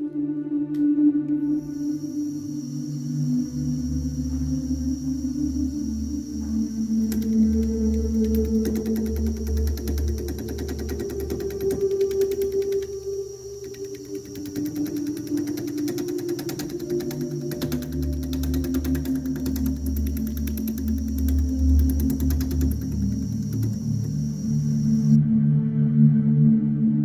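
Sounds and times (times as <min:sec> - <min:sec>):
slow ambient music: 0:00.0 - 0:27.0
wood lathe whirring: 0:03.7 - 0:25.2.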